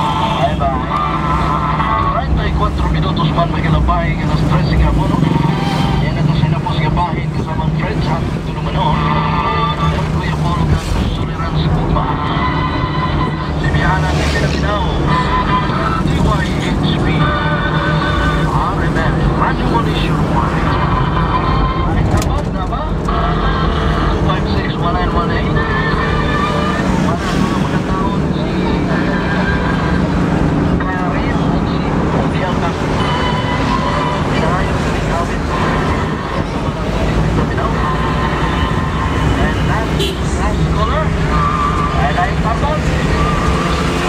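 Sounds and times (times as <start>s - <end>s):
people talking: 0.0s - 44.0s
vehicle engine and road hum: 0.0s - 44.0s.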